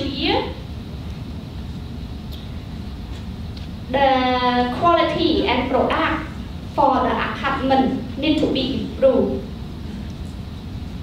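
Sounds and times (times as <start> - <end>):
low rumble of large hall: 0.0 - 11.0.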